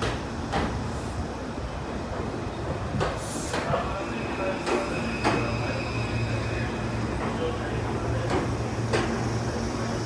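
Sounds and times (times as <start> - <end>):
electric train rumbling: 0.0 - 10.0
air hiss: 3.0 - 6.7
train wheel clicks: 8.2 - 9.2.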